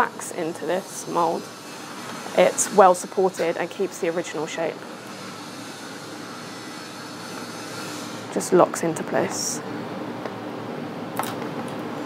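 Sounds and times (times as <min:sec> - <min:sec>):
steady ventilation rush: 0:00.0 - 0:12.0.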